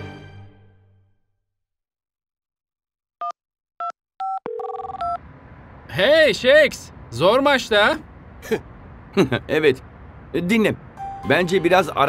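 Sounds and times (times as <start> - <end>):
touch-tone dialling beeps: 3.2 - 5.2.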